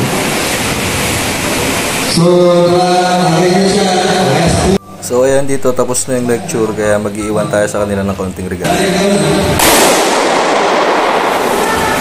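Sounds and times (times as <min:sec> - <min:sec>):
explosive bang echoing in hall: 0:09.4 - 0:12.0.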